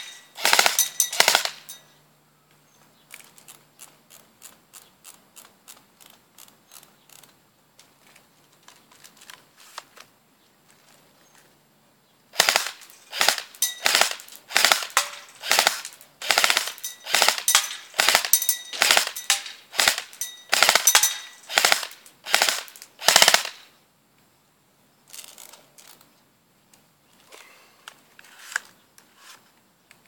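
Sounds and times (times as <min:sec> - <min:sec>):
airsoft gun firing bursts: 0:00.0 - 0:01.8, 0:12.4 - 0:23.7.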